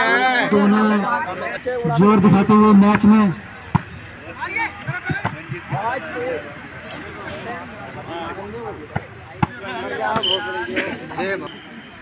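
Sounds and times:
spectators chatting and shouting: 0:00.0 - 0:12.0.

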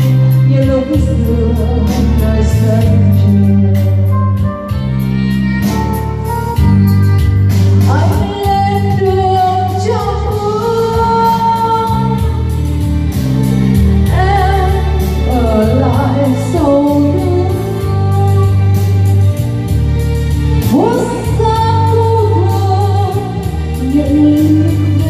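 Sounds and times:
woman singing into microphone: 0:00.0 - 0:05.6, 0:07.8 - 0:13.1, 0:13.7 - 0:19.4, 0:20.6 - 0:25.0
keyboard backing: 0:00.0 - 0:25.0
musical accompaniment with bass: 0:00.0 - 0:25.0.

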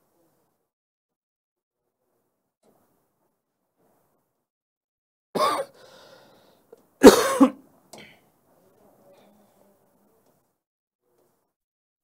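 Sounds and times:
man coughing: 0:05.4 - 0:05.8, 0:07.0 - 0:07.6.

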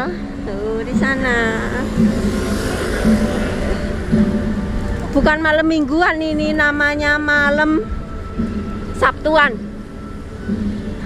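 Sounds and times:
music playing: 0:00.0 - 0:11.0
street traffic rumble: 0:00.0 - 0:11.0.

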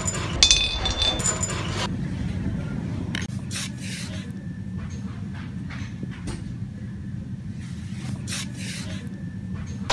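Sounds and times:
shop background hum: 0:00.0 - 0:09.9.

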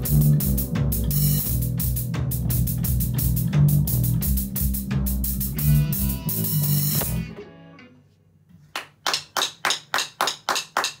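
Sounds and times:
sharp evenly spaced strikes: 0:00.0 - 0:07.3.

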